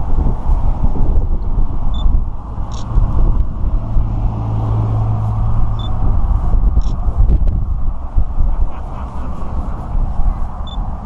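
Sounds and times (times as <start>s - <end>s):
low rumble of outdoor noise: 0.0s - 11.0s
steady low hum: 0.0s - 11.0s.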